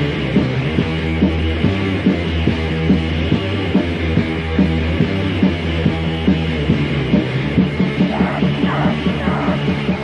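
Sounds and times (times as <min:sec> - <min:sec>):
distorted guitar riffing: 0:00.0 - 0:10.0
harsh yelled vocal: 0:08.0 - 0:10.0.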